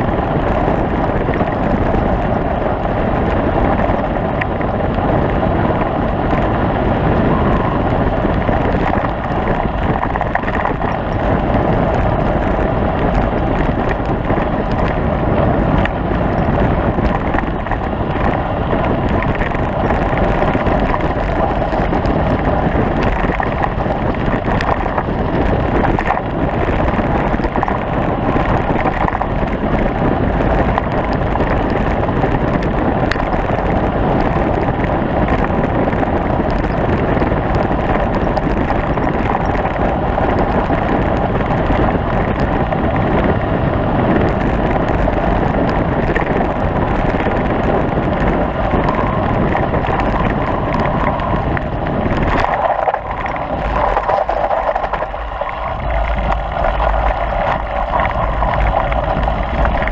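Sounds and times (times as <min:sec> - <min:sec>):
tyres rumbling over gravel: 0:00.0 - 0:59.9
wind buffeting microphone: 0:00.0 - 0:59.9.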